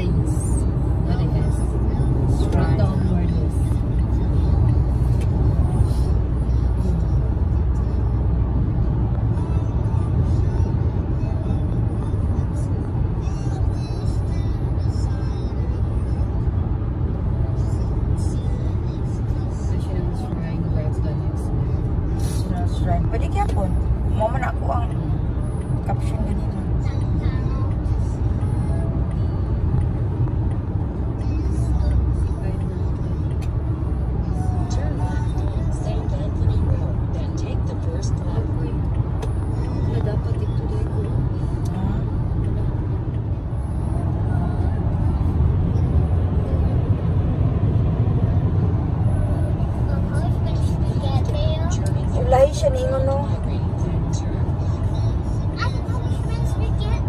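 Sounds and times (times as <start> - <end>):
car road and engine rumble: 0.0 - 57.0.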